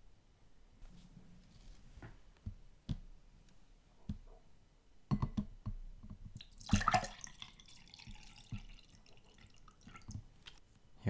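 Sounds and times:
drink being poured: 6.4 - 10.2.

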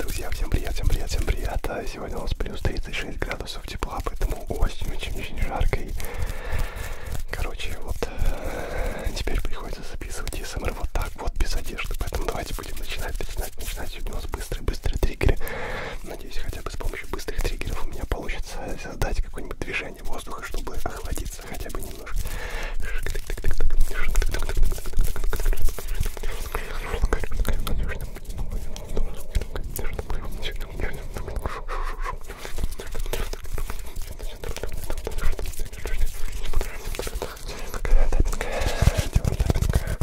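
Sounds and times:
hand rustles: 0.0 - 40.0
person whispering: 0.0 - 40.0
crisp clicks at microphones: 9.0 - 15.4, 32.4 - 40.0.

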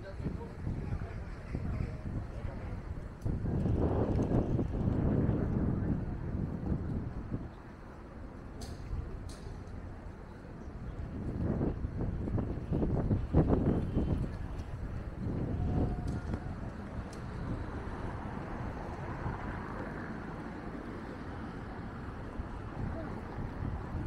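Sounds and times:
background traffic hum: 0.0 - 24.0
passing vehicles: 11.4 - 24.0.

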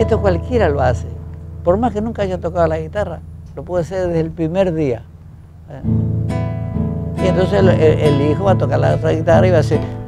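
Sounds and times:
nylon-string guitar strummed: 0.0 - 10.0.

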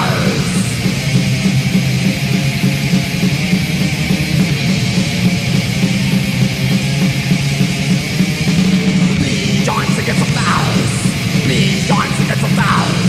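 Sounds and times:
distorted electric guitars: 0.0 - 13.0
drums playing: 0.0 - 13.0.

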